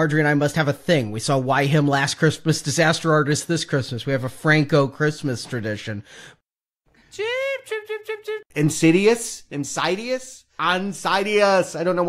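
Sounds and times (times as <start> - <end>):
high-pitched voice-like sound: 7.1 - 8.5.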